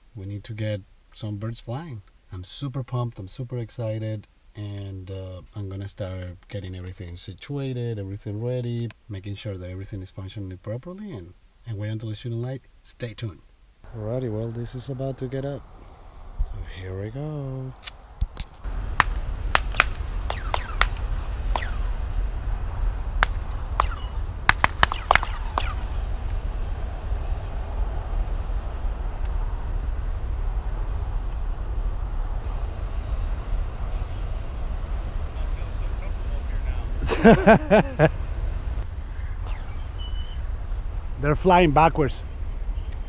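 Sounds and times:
crickets chirping: 10.7 - 43.0
wind buffeting microphone: 13.9 - 43.0
sharp clicks: 17.8 - 21.7, 23.2 - 26.4.

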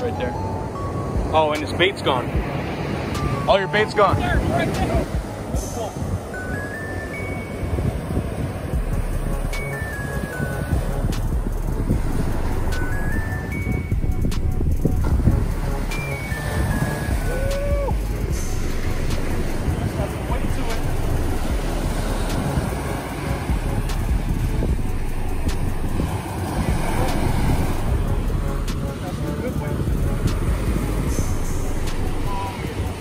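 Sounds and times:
background music: 0.0 - 33.0
ocean surf washing: 0.0 - 33.0
wind buffeting microphone: 0.0 - 33.0.

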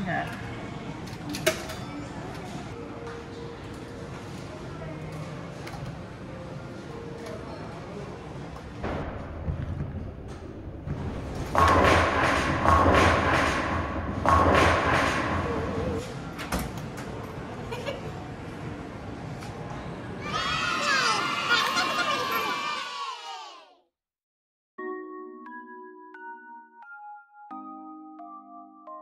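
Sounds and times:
low arcade hum: 8.5 - 20.1.

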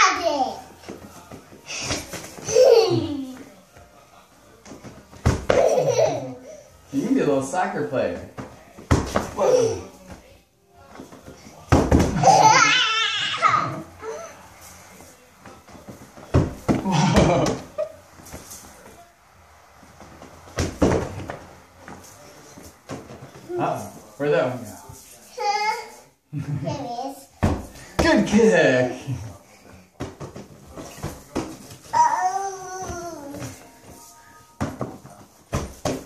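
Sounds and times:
beach ball thumps on hardwood floor: 8.4 - 9.4, 11.7 - 12.2, 16.3 - 17.6, 20.6 - 21.4, 27.4 - 28.3.

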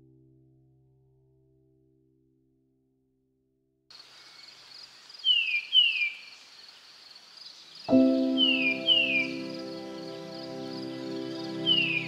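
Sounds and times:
insects trilling: 3.9 - 12.0
falling whistled bird calls: 5.2 - 6.6, 7.6 - 12.0.

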